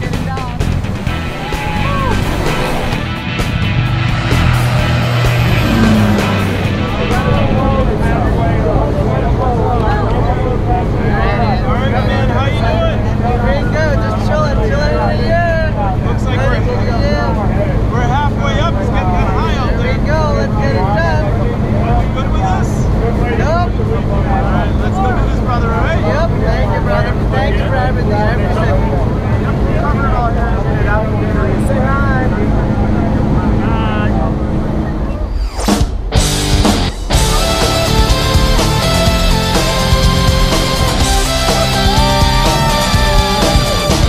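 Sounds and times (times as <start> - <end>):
people talking and shouting: 0.0 - 44.0
plane engine and propeller drone: 2.3 - 35.3.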